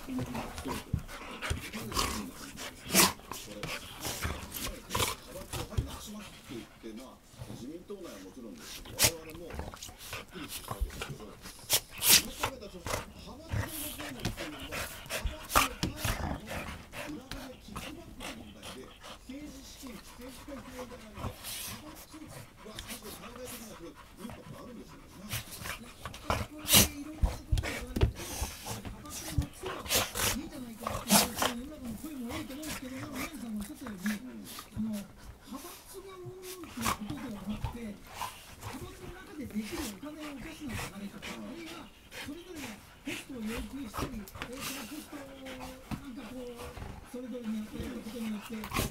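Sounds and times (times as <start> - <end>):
dogs panting: 0.0 - 48.9
dogs scuffling: 0.0 - 48.9
person talking: 0.0 - 48.9.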